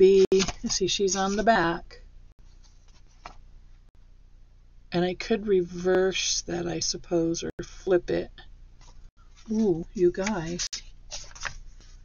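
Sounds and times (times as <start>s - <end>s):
paper cards rustling: 0.0s - 1.6s, 2.5s - 3.4s, 8.8s - 12.0s
low room hum: 0.0s - 12.0s.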